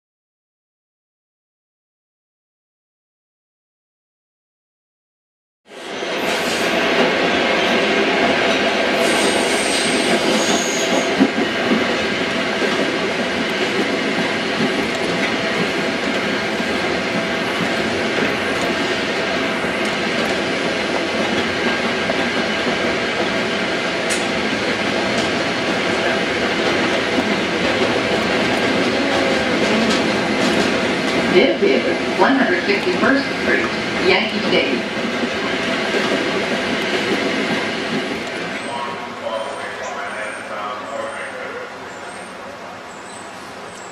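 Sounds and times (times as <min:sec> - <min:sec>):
subway train rumble and rattle: 0:05.7 - 0:43.9.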